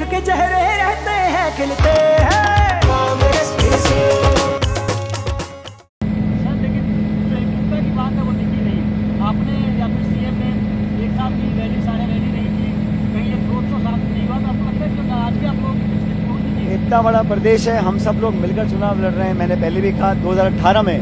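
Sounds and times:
small aircraft cabin drone: 0:06.0 - 0:21.0.

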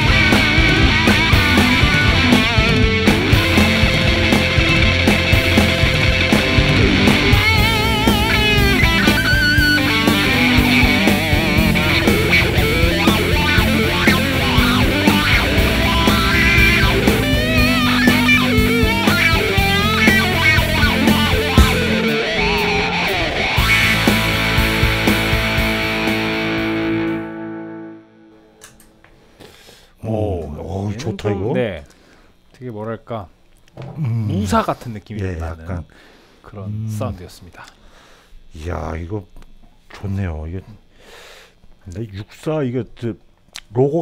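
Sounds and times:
electric guitar lead with bends: 0:00.0 - 0:28.3.

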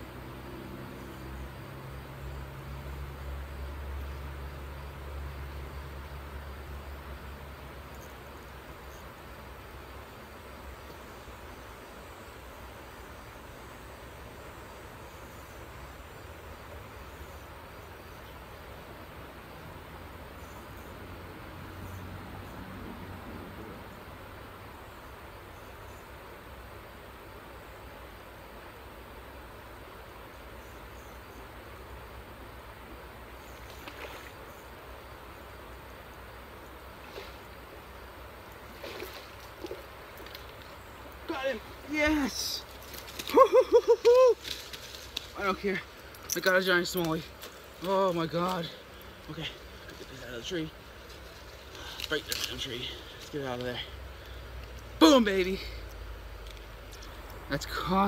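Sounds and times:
river water flowing: 0:00.0 - 0:58.0.

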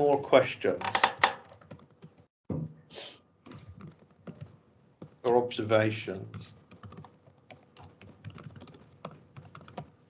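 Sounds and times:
typing on laptop keyboard: 0:00.8 - 0:02.3, 0:03.4 - 0:05.4, 0:06.3 - 0:10.0.

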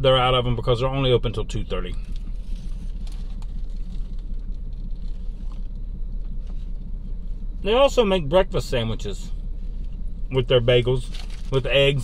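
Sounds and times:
vehicle low rumble: 0:00.0 - 0:12.0.

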